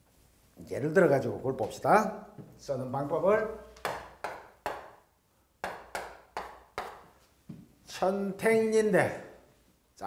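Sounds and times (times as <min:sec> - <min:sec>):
chalk tapping on chalkboard: 0:03.8 - 0:05.0, 0:05.6 - 0:07.2.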